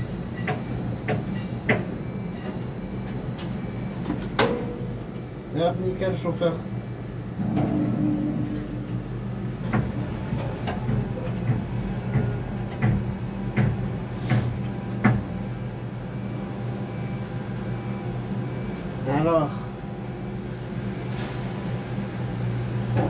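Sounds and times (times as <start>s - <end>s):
construction machinery humming: 0.0s - 20.9s.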